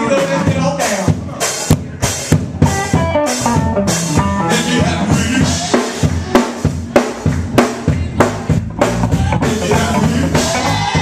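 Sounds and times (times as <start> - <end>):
bass line: 0.0 - 11.0
live band instrumental groove: 0.0 - 11.0.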